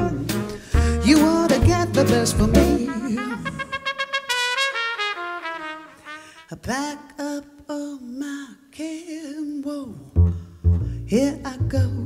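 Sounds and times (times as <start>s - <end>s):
live jazz band: 0.0s - 6.5s
brass instrument descending phrase: 2.4s - 6.6s.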